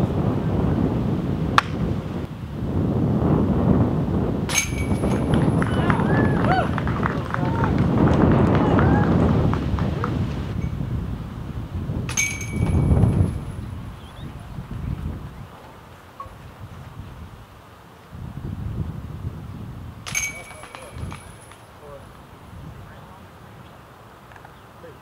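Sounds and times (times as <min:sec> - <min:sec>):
disc golf chains clashing: 0:04.5 - 0:06.2, 0:12.0 - 0:14.3, 0:20.0 - 0:22.5.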